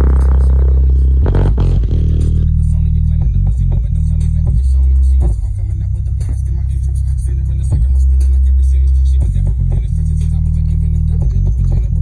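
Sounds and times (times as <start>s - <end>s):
deep bass notes from speaker: 0.0s - 12.0s.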